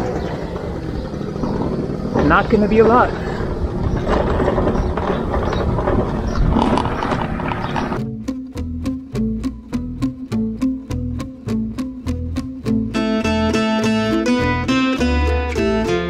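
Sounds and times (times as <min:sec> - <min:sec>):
small motorbike engine running: 0:00.0 - 0:08.0
wind noise: 0:00.0 - 0:08.0
plucked-string music: 0:08.0 - 0:16.0.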